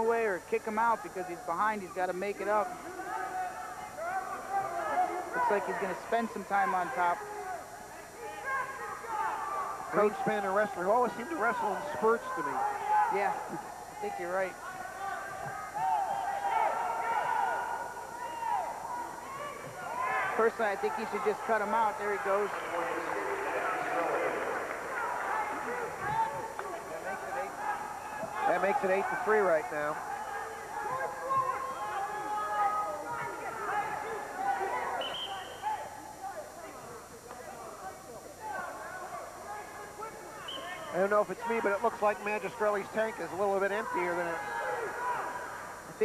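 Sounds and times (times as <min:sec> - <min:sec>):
coaches and spectators shouting: 0:00.0 - 0:46.0
low crowd hubbub: 0:00.0 - 0:46.0.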